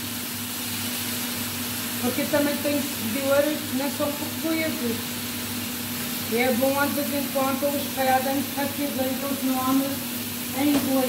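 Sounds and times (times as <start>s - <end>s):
noodles sizzling in a frying pan: 0.0s - 11.0s.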